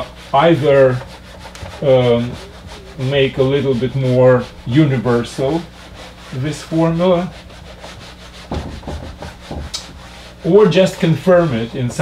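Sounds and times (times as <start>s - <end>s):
eraser rubbing on whiteboard: 0.0s - 12.0s.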